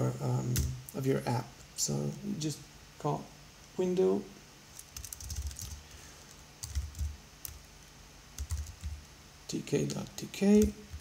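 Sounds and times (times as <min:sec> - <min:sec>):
typing on keyboard: 0:04.9 - 0:05.8, 0:06.6 - 0:07.6, 0:08.4 - 0:09.0.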